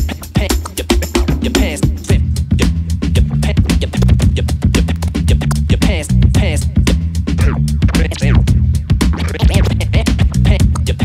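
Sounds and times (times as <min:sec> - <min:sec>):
turntable scratching: 0:00.0 - 0:06.7, 0:07.3 - 0:11.0
hip-hop beat with bass: 0:00.0 - 0:11.0.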